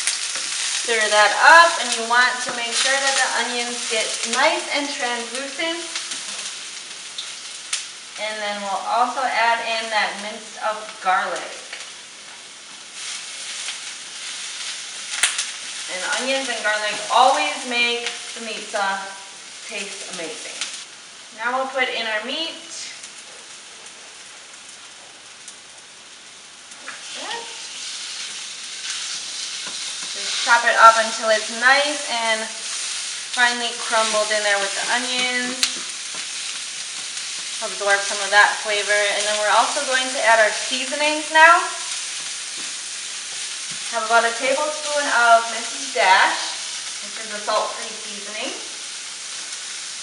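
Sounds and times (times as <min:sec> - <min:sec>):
onion sizzling in oil: 0:00.0 - 0:50.0
spatula scraping and tapping pan: 0:28.2 - 0:30.6.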